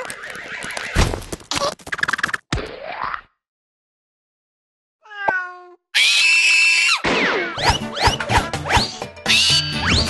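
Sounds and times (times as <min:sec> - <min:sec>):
cat meowing: 0:05.0 - 0:06.9
cat screeching: 0:05.0 - 0:07.6.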